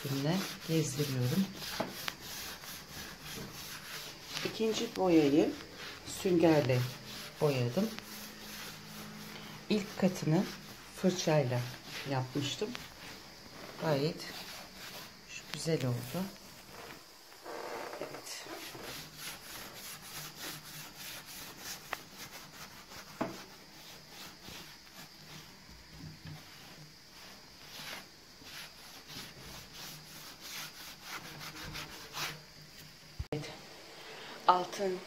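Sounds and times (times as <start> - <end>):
sponge rubbing on wood: 0.0 - 32.5.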